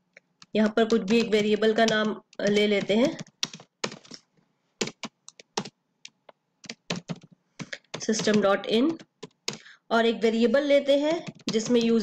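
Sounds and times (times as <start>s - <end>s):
computer keyboard typing: 0.4s - 9.7s, 11.0s - 12.0s.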